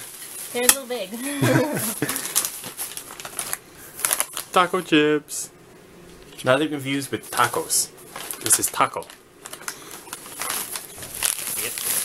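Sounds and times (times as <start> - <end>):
laughter: 1.3 - 2.2.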